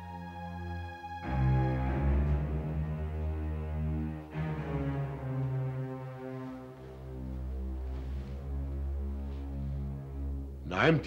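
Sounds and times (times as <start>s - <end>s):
dramatic low brass-like music: 0.0s - 11.0s.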